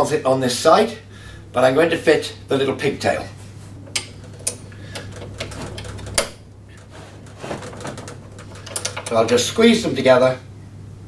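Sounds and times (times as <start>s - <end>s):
small clicks and light rattles: 3.9s - 9.3s.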